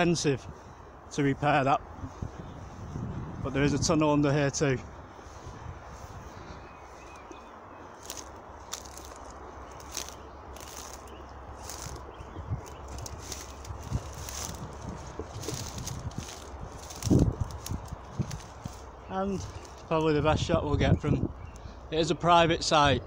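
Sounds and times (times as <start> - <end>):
footsteps through long grass: 0.0 - 21.9.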